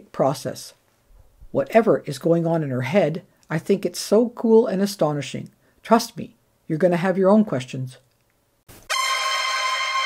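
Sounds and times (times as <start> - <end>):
loud horn-like buzzer tone: 8.9 - 10.0.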